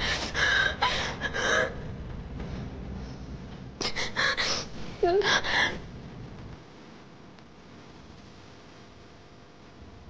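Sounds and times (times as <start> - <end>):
woman sobbing and gasping: 0.0 - 1.9.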